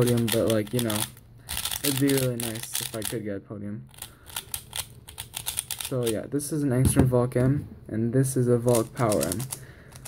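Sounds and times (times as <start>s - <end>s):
puzzle cube plastic clicks: 0.0s - 3.2s, 3.9s - 6.1s, 8.7s - 10.0s.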